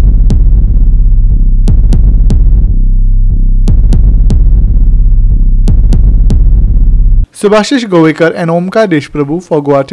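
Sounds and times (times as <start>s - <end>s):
sharp percussive hits: 0.0s - 2.7s, 3.7s - 7.2s
pulsing synth bass: 0.0s - 7.3s.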